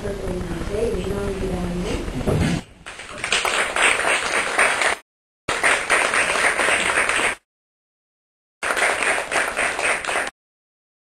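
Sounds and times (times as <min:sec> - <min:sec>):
audience applauding: 0:02.9 - 0:07.4, 0:08.6 - 0:10.3.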